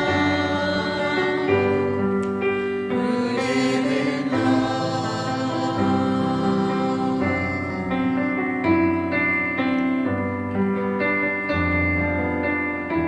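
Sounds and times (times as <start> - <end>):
church choir singing a hymn: 0.0 - 8.9.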